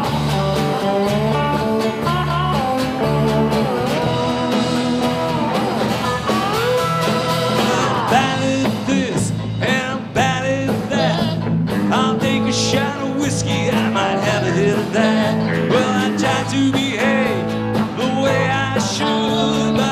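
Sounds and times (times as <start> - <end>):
acoustic guitar: 0.0 - 19.9
bass guitar: 0.0 - 19.9
drums: 0.0 - 19.9
electric slide guitar: 0.0 - 19.9
man singing: 7.0 - 19.9.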